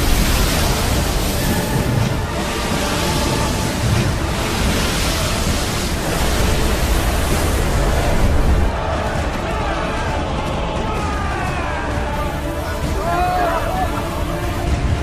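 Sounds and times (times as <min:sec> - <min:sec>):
churning sea water: 0:00.0 - 0:15.0.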